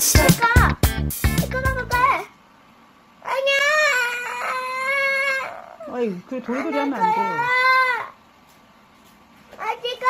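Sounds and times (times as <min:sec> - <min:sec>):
girl's high-pitched whining cry: 0:03.2 - 0:08.2.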